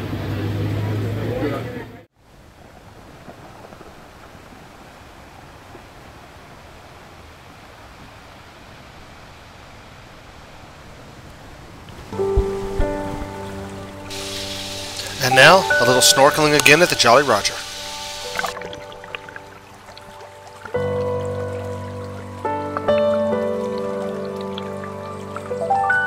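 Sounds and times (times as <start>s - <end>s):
wind by water: 0.0s - 26.0s
faint steady hiss: 2.2s - 20.8s
background music: 12.2s - 26.0s.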